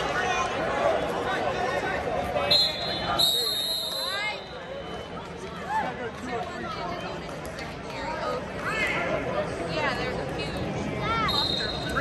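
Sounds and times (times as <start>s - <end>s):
coaches and spectators shouting: 0.0s - 7.2s, 10.8s - 12.0s
referee's whistle blasts: 2.5s - 5.1s, 11.3s - 12.0s.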